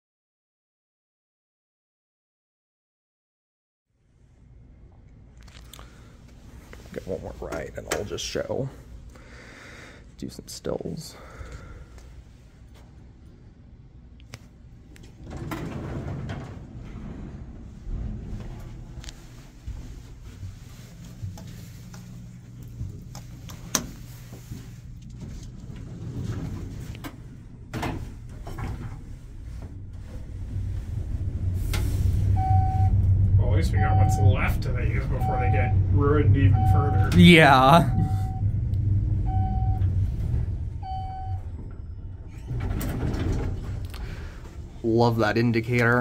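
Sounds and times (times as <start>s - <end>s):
elevator hum: 10.7s - 46.0s
elevator doors sliding shut: 15.0s - 22.0s, 22.7s - 45.2s
short beeps: 32.3s - 33.0s, 33.8s - 38.6s, 39.2s - 39.9s, 40.8s - 41.5s.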